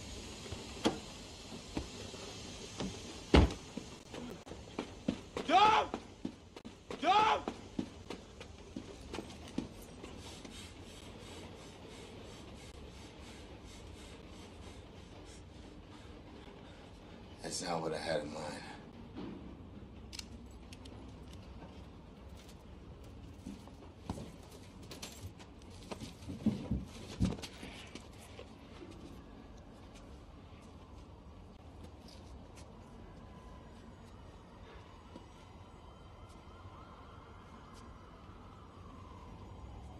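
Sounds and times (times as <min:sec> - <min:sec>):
faint steady hiss: 0:00.0 - 0:19.0.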